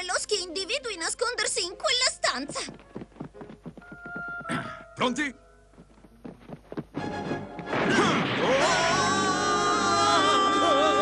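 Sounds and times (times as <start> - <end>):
music: 0.0 - 11.0
footsteps running: 2.4 - 7.7.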